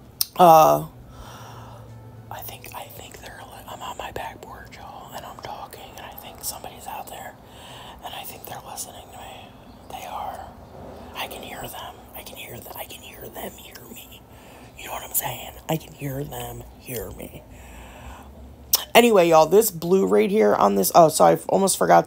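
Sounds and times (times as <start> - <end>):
woman whispering: 0.2 - 0.9, 2.3 - 7.4, 8.0 - 17.5.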